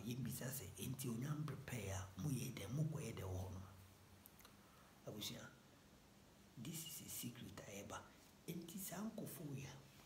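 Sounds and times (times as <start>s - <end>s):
man speaking: 0.0s - 3.8s, 5.0s - 5.6s, 6.6s - 9.9s.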